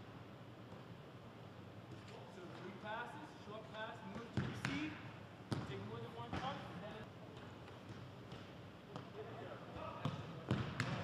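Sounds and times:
soccer balls being kicked: 0:09.8 - 0:11.0.

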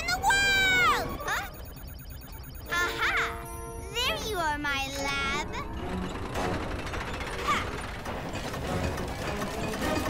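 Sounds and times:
machinery clanking and ratcheting: 0:04.8 - 0:10.0.

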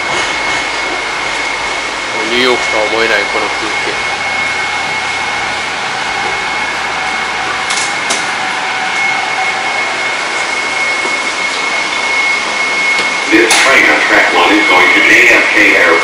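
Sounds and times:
train cabin rushing noise: 0:00.0 - 0:11.3
high whine: 0:00.0 - 0:16.0.

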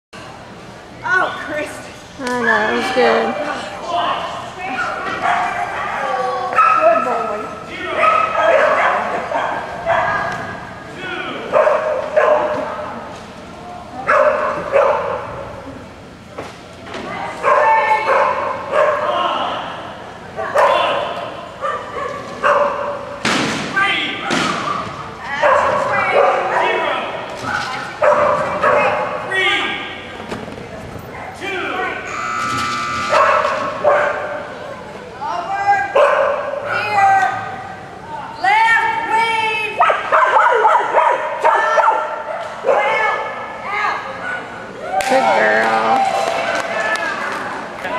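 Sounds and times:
indistinct talking: 0:00.3 - 0:47.9
dogs barking and yipping: 0:04.8 - 0:07.0, 0:08.0 - 0:10.4, 0:11.5 - 0:12.7, 0:28.0 - 0:29.2, 0:33.1 - 0:34.4, 0:36.0 - 0:36.8, 0:39.8 - 0:43.4.

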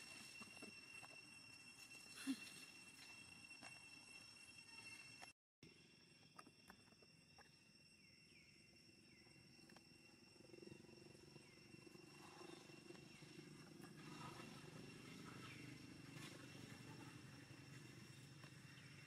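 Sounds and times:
faint chirps: 0:00.0 - 0:19.0
high insect drone: 0:00.0 - 0:19.0.

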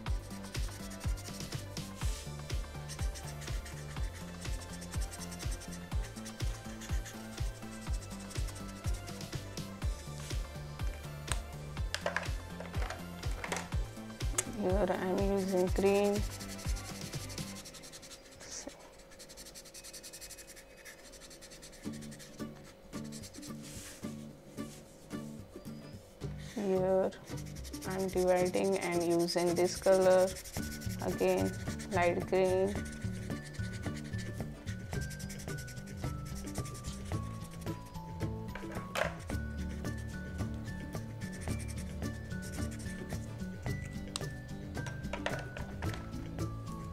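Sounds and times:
marker scribbling on cardboard: 0:00.0 - 0:09.7, 0:14.8 - 0:24.0, 0:27.2 - 0:38.0, 0:39.1 - 0:40.4, 0:41.0 - 0:43.5
soft background music: 0:00.0 - 0:46.9.

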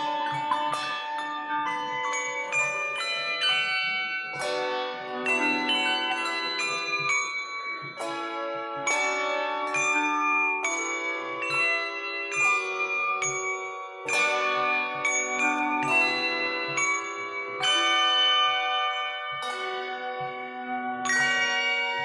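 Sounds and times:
handbell choir chords: 0:00.0 - 0:22.0.

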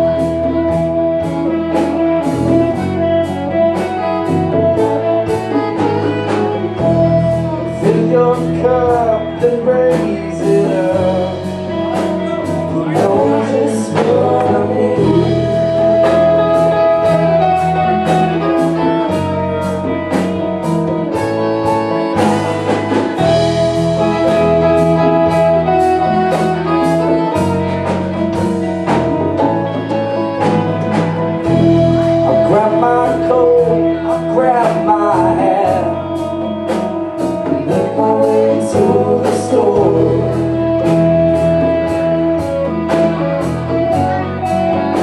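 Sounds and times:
blues-funk band playing: 0:00.0 - 0:45.0
lead line held notes: 0:00.0 - 0:45.0.

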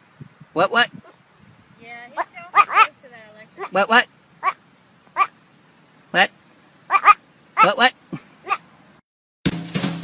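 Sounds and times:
goat bleating: 0:02.1 - 0:05.3, 0:06.9 - 0:08.6.

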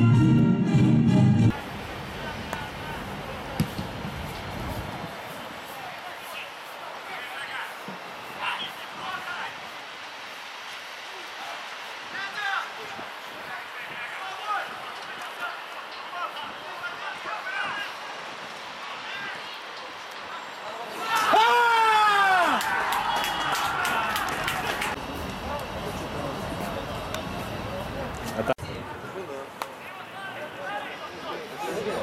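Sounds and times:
outdoor background hiss: 0:01.5 - 0:32.0
distant shouts: 0:18.8 - 0:25.0
sharp hand claps: 0:22.5 - 0:25.0.

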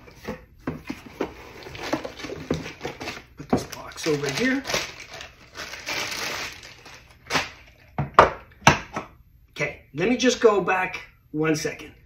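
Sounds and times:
plastic bag crinkling: 0:01.5 - 0:07.8.

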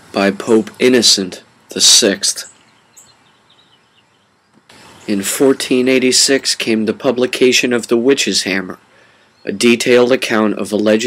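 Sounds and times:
man speaking: 0:00.0 - 0:02.6, 0:05.0 - 0:08.8, 0:09.4 - 0:11.0
background hiss: 0:00.0 - 0:11.0.

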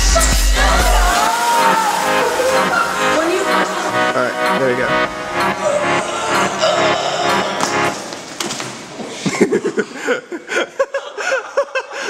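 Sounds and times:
music: 0:00.0 - 0:08.2
person laughing: 0:09.1 - 0:12.0.

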